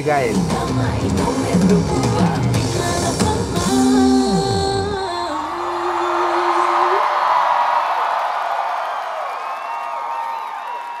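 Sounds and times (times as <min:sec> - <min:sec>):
pop song held note: 0:00.0 - 0:07.1
crowd cheering and screaming: 0:05.1 - 0:11.0
individual whoops: 0:05.6 - 0:11.0.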